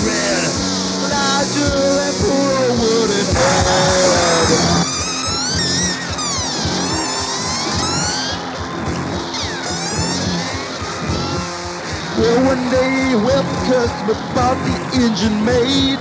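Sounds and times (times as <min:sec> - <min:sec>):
punk band instrumental: 0:00.0 - 0:16.0.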